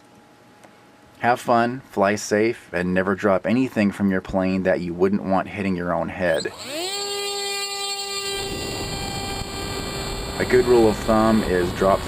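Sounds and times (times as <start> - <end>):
electric motor whining: 6.3 - 12.0.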